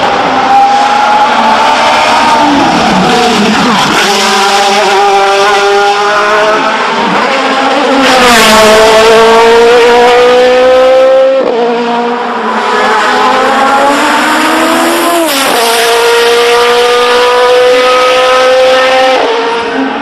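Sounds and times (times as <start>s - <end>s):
race car engine at high revs: 0.0s - 20.0s.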